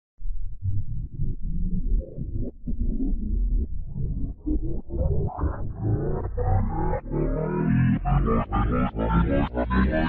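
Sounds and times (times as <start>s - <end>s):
reversed low-pitched intro music: 5.2s - 10.0s.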